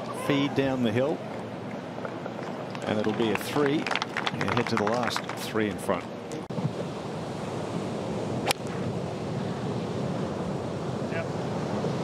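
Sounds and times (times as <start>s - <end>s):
surf: 0.0s - 12.0s
wind: 0.0s - 12.0s.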